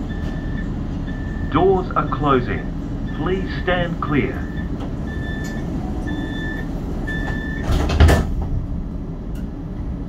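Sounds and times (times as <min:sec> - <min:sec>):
high warning beeps: 0:00.0 - 0:07.7
tram rumble: 0:00.0 - 0:10.0
doors sliding shut: 0:05.4 - 0:08.6.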